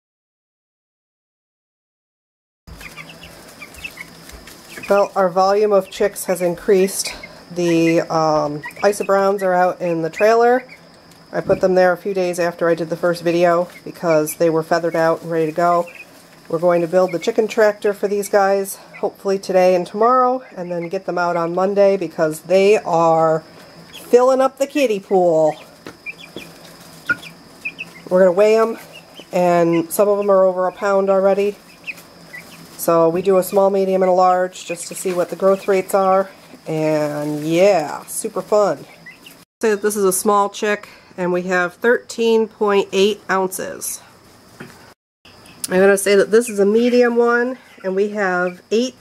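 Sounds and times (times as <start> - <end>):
chicks peeping: 2.7 - 41.7, 42.4 - 49.0
faint steady hum: 2.7 - 49.0.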